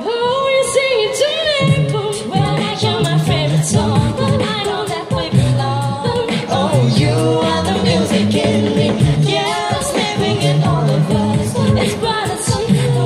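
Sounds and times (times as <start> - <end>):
a cappella group singing in harmony: 0.0 - 13.0
sung bass line: 1.6 - 13.0.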